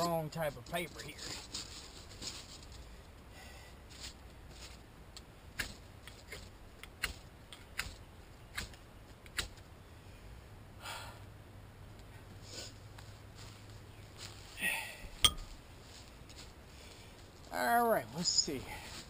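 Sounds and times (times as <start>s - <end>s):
short rustle: 0.5s - 3.2s, 3.9s - 4.9s.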